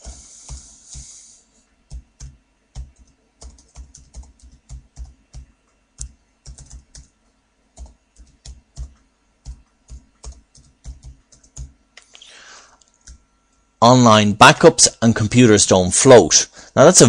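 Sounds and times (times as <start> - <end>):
typing on computer keyboard: 1.9 - 7.2, 7.8 - 11.8.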